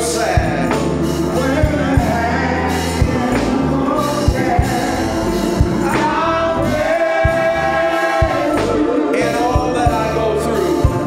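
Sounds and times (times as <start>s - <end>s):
man singing into a microphone: 0.0s - 5.1s, 8.4s - 11.0s
choir voices: 0.0s - 11.0s
instrumental backing with low beat: 0.0s - 11.0s.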